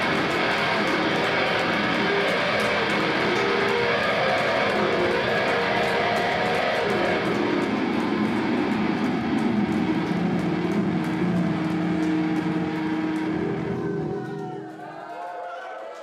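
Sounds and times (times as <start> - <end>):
rock band playing live: 0.0 - 14.2
rapid cymbal hits: 0.0 - 15.0
crowd voices: 0.0 - 16.0.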